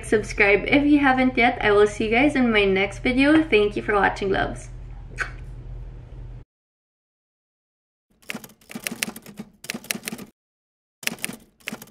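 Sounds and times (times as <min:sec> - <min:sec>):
typewriter keys clacking: 0:08.2 - 0:10.3, 0:11.0 - 0:11.9.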